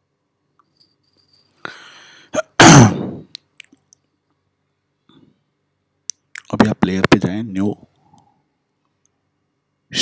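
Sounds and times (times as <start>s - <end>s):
person sneezing: 1.7s - 3.3s.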